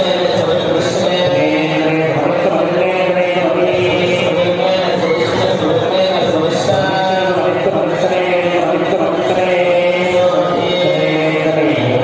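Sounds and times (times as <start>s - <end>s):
priests chanting: 0.0s - 12.0s.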